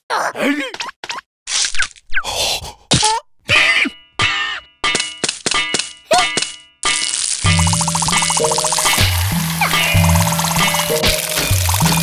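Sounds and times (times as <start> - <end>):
rhythmic cartoon music: 7.5 - 12.0.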